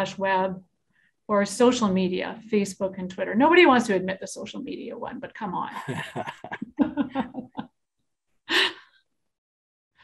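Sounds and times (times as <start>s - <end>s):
person laughing: 5.8s - 7.6s.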